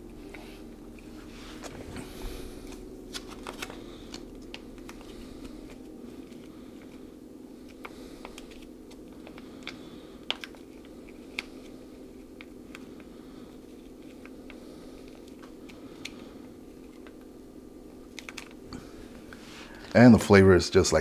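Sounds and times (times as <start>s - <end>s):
steady low hum: 0.0s - 21.0s
foil pouch crinkling: 2.0s - 17.3s, 18.0s - 19.0s.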